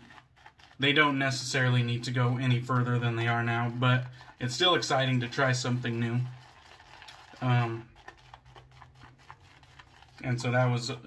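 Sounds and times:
shaving brush whipping soap lather: 0:00.0 - 0:11.0.

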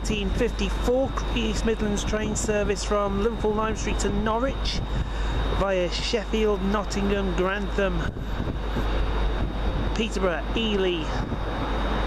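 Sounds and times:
diesel train approaching: 0:00.0 - 0:12.0
wind rumbling on microphone: 0:00.0 - 0:12.0.

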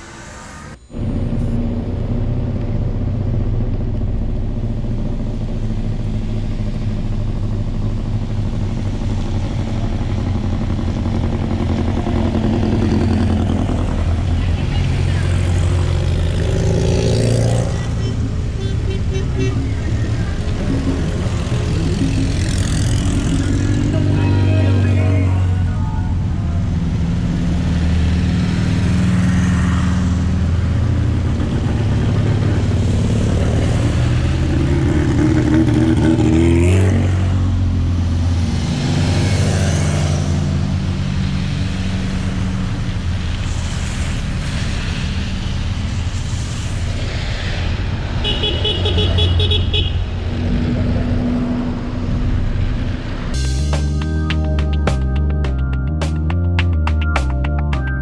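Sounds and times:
dune buggy engines passing: 0:00.0 - 0:53.3.

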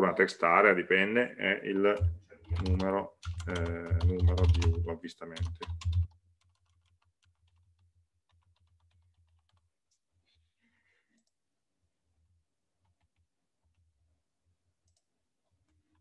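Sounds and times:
faint keyboard typing: 0:01.8 - 0:10.4, 0:12.1 - 0:14.2, 0:14.8 - 0:16.0.

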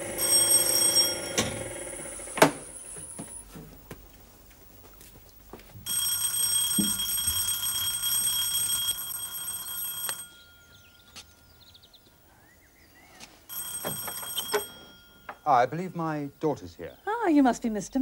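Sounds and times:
electric doorbell ringing: 0:00.0 - 0:03.5, 0:05.9 - 0:11.1, 0:13.5 - 0:15.7.

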